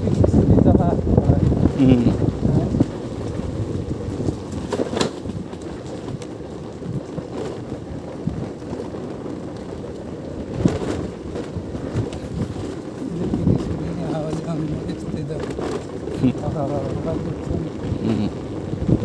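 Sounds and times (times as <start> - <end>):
low rumble on dirt track: 0.0 - 19.0
wind buffeting microphone: 0.0 - 19.0.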